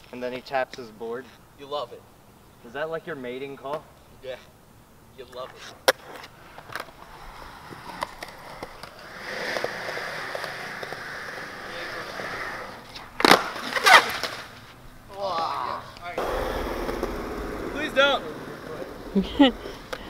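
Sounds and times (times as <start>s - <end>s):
skateboard wheels rolling on concrete: 0.0s - 20.0s
voices: 11.4s - 20.0s
board and body hitting concrete: 12.3s - 15.6s, 16.2s - 20.0s.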